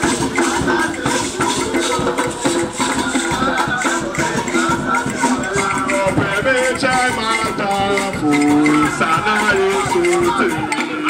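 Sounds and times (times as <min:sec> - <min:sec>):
group singing gospel song: 0:00.0 - 0:11.0
hand drums: 0:00.0 - 0:11.0.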